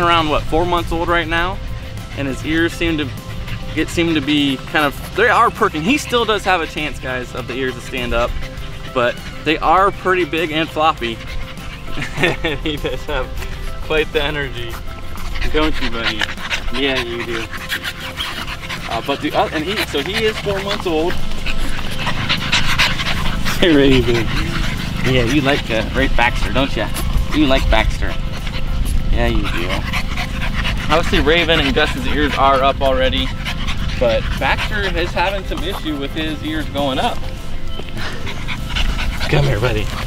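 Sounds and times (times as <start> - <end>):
background music: 0.0 - 40.0
puppies panting: 0.0 - 40.0.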